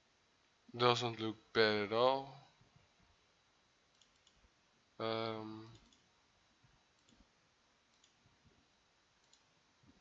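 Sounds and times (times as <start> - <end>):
computer mouse clicks: 3.9 - 4.5, 5.6 - 6.1, 7.0 - 7.3, 7.9 - 8.3, 9.2 - 10.0.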